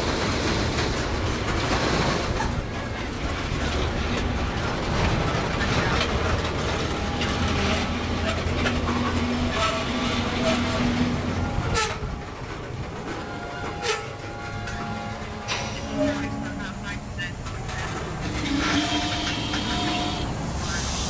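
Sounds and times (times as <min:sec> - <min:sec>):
train wheels rumbling on rails: 0:00.0 - 0:21.0
wheels clicking over rail joints: 0:00.0 - 0:21.0.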